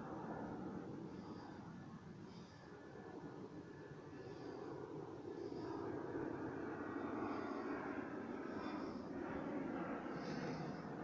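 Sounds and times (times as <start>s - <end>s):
airplane engine drone: 0.0s - 11.0s.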